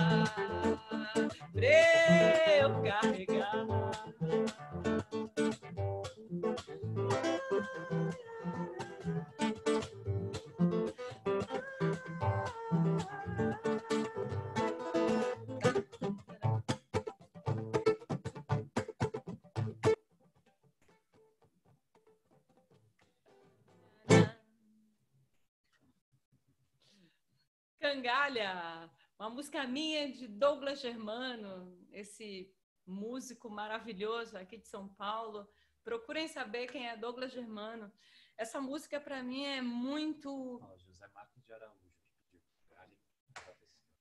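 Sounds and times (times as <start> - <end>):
person singing: 0.0 - 5.0, 6.6 - 16.6, 24.1 - 24.4
acoustic guitar plucked: 0.0 - 20.0, 24.0 - 24.4.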